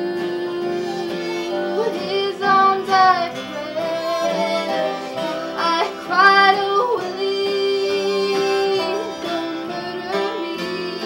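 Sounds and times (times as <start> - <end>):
harmonica: 0.0 - 11.0
strummed acoustic guitars: 0.0 - 11.0
woman singing: 0.0 - 11.0.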